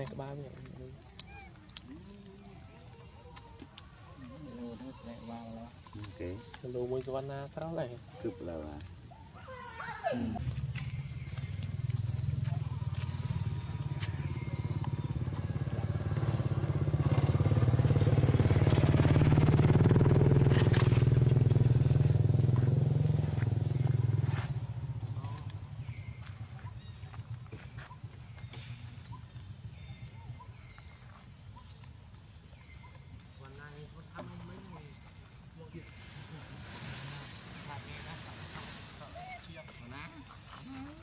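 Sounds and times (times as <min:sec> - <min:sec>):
vehicle engine running: 0:10.4 - 0:31.7.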